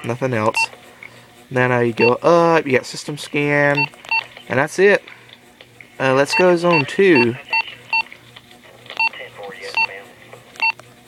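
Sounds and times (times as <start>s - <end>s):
radio keypad beeps: 6.3s - 8.1s, 9.0s - 10.0s.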